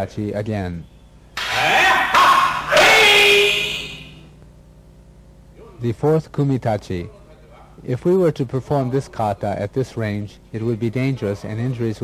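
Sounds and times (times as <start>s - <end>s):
loud martial arts shouts: 1.4s - 4.2s.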